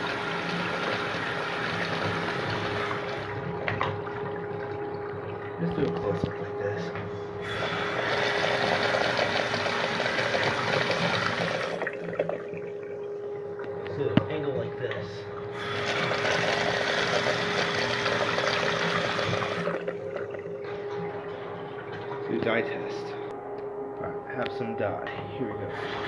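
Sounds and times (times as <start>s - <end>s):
toilet flushing water swirling: 0.0s - 13.9s, 15.2s - 23.0s, 25.7s - 26.0s
steady hum: 0.0s - 26.0s.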